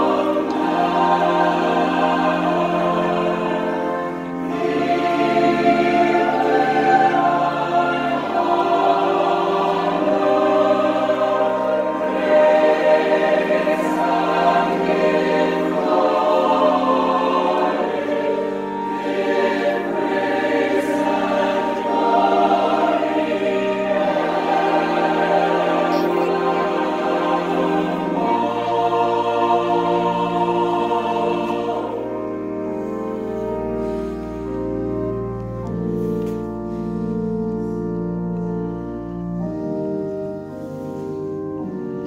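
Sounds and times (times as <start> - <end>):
mixed choir singing: 0.0 - 34.0.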